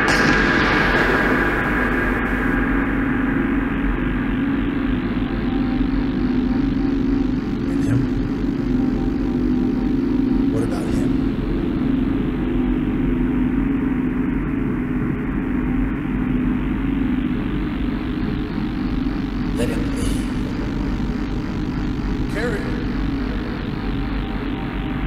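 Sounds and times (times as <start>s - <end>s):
low rumbling drone: 0.0s - 25.0s.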